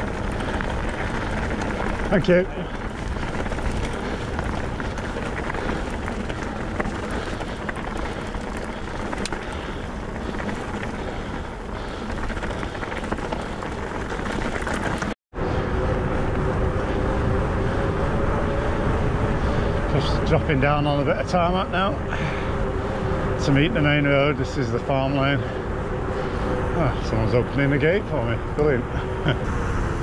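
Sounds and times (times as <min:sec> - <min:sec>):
bike rattling: 0:00.0 - 0:30.0
bike rolling on tarmac: 0:00.0 - 0:30.0.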